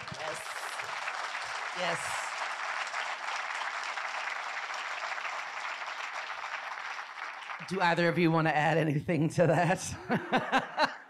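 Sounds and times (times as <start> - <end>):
audience applauding: 0.0 - 8.3.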